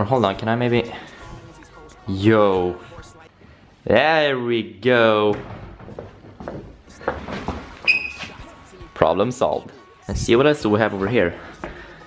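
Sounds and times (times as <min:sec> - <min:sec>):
high squeak of pivot: 0:07.8 - 0:08.4.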